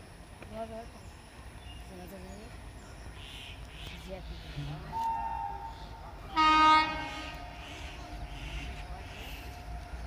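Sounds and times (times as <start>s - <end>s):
locomotive horn blast: 6.3s - 7.9s.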